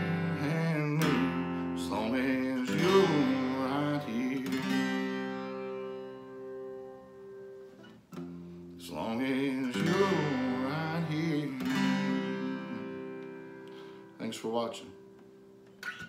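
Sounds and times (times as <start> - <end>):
man singing: 0.0 - 5.4, 8.8 - 13.4
strummed acoustic guitar: 0.0 - 16.0.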